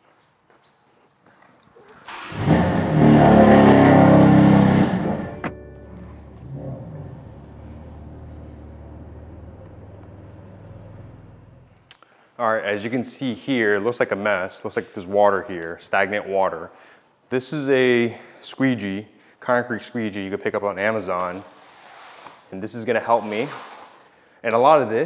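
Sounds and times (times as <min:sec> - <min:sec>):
car engine starting and revving: 0:02.1 - 0:11.9.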